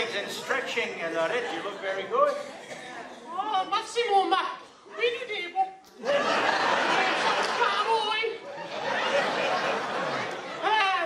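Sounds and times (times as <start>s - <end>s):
crowd laughing: 6.0s - 11.0s.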